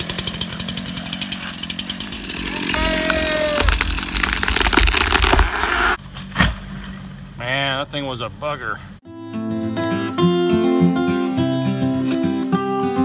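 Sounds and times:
chainsaw running: 0.0 - 6.0.

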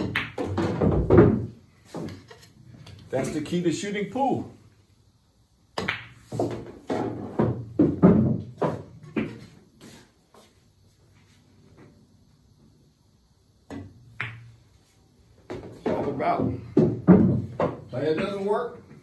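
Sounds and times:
pool balls knocking and rolling: 0.0 - 3.5, 5.7 - 9.6, 13.6 - 19.0
cue tip tapping ball: 13.7 - 14.5.

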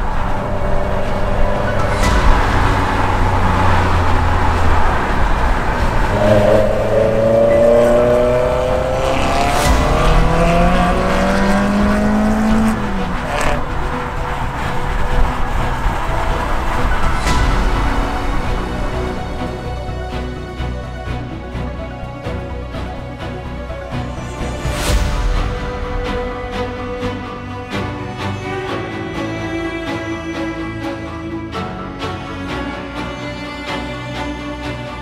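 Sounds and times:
car engine accelerating hard: 0.0 - 18.5.

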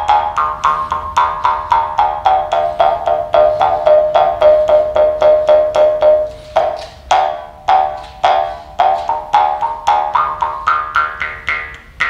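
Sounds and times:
jaw harp twanging: 0.0 - 12.0.

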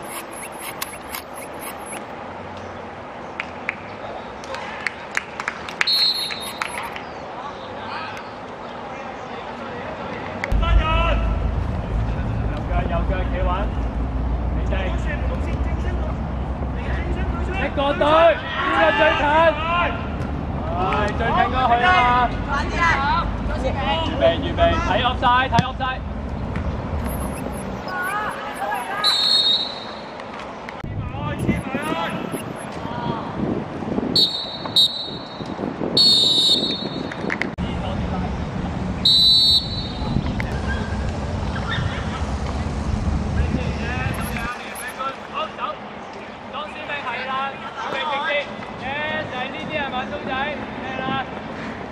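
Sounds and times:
referee's whistle blasts: 5.9 - 6.9, 27.1 - 30.0, 31.4 - 32.7, 34.2 - 35.4, 36.0 - 37.1, 39.0 - 40.1, 44.1 - 44.9
steady low rumble: 10.5 - 14.2
faint voices: 30.9 - 33.4.

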